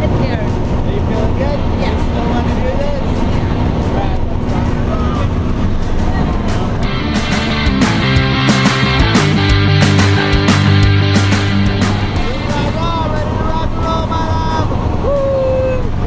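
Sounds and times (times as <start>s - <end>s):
rock music: 6.8s - 13.1s.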